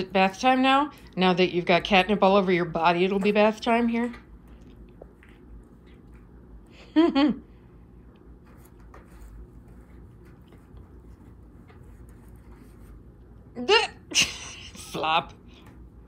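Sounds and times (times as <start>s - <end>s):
woman laughing: 6.7s - 7.5s, 13.6s - 15.1s
cat rubbing against cardboard: 8.4s - 13.2s.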